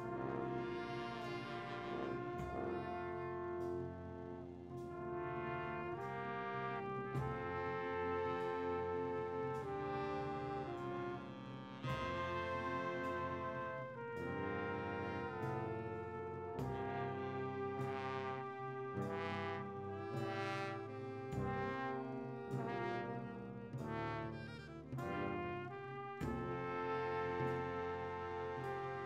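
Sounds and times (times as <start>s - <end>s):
slow brass ensemble chords: 0.0s - 29.0s.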